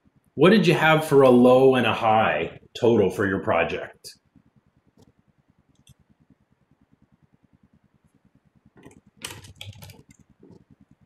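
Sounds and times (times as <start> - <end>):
typing on keyboard: 8.8 - 11.0.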